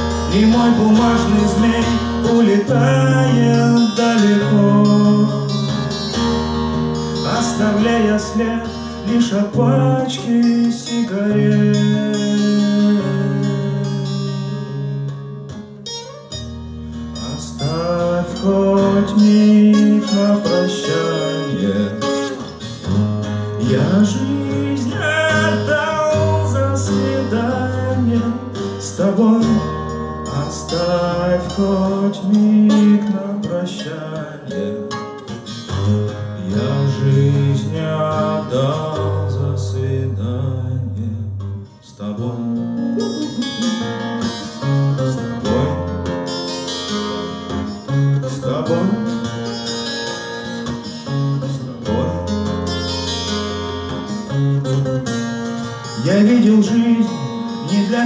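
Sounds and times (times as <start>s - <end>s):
twelve-string acoustic guitar: 0.0s - 58.0s.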